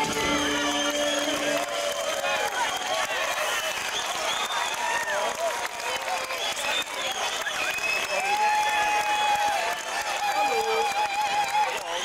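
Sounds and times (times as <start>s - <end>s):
audience applauding and cheering: 0.0s - 12.0s.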